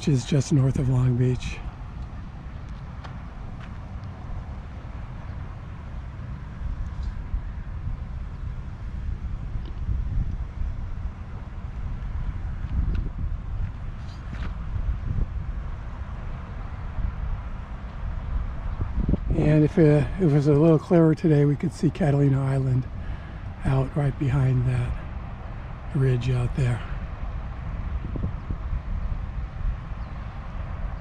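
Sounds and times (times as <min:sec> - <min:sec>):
distant road traffic: 0:00.0 - 0:31.0
wind rumbling on microphone: 0:00.0 - 0:31.0.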